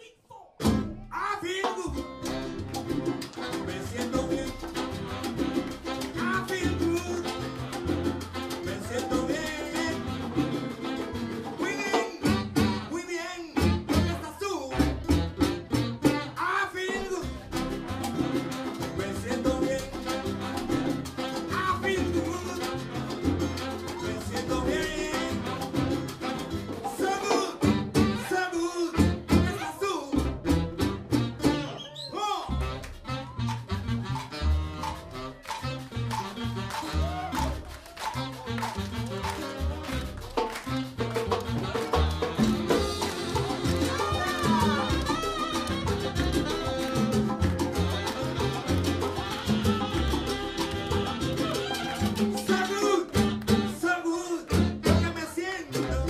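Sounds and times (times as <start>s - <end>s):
live salsa band playing: 0.6s - 56.0s.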